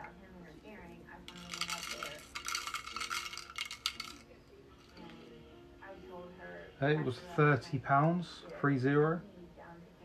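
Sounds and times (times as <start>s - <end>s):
plastic pieces rattling in dome: 1.3s - 4.2s.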